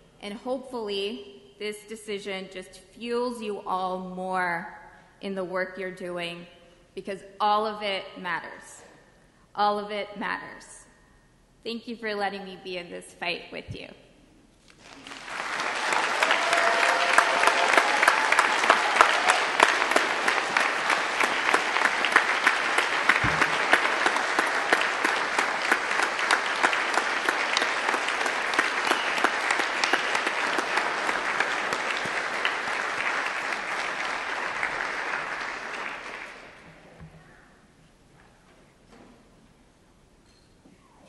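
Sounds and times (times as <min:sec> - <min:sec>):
audience applauding: 0:14.8 - 0:36.8.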